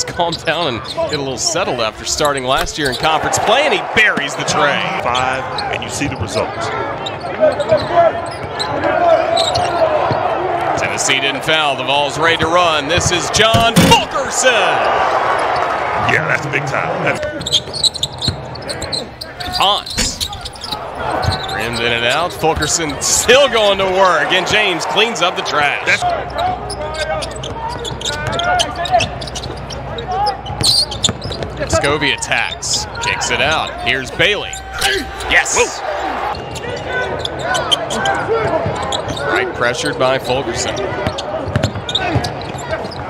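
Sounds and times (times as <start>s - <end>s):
sneakers squeaking: 0.1s - 3.2s, 4.4s - 10.3s, 17.2s - 43.0s.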